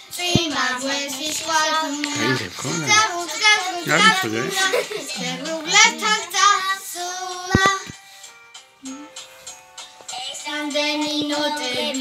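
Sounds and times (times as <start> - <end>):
girls singing together: 0.2 - 7.9, 10.5 - 12.0.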